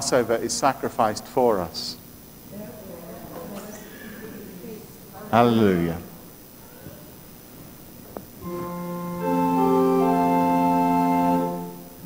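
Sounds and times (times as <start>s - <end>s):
congregation speaking together: 0.0s - 7.2s.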